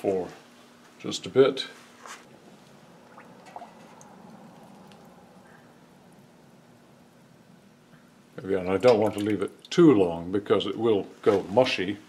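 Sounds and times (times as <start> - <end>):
steady low hum: 0.0 - 12.0
water dripping: 2.6 - 6.5, 8.4 - 9.8.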